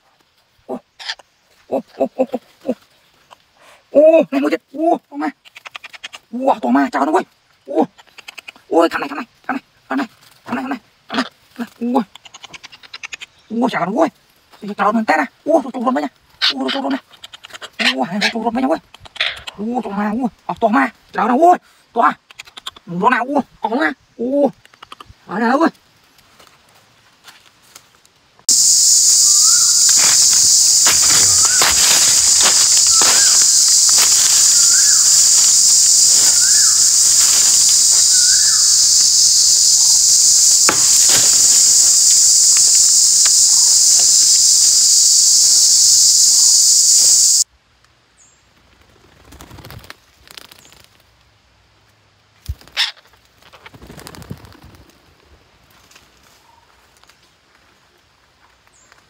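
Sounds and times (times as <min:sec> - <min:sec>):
rustling in leaf litter: 0:25.9 - 0:47.4
sharp clicks: 0:28.5 - 0:44.8
bird call: 0:28.5 - 0:47.4
high-pitched insect drone: 0:28.5 - 0:47.4.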